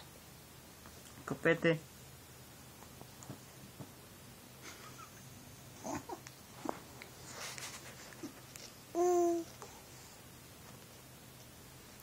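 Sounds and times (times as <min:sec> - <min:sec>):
baby cooing: 0:05.8 - 0:06.3, 0:08.2 - 0:09.6.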